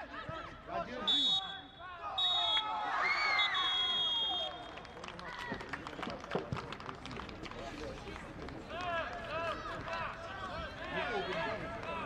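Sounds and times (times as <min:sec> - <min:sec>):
whistle tone: 0:02.2 - 0:04.6.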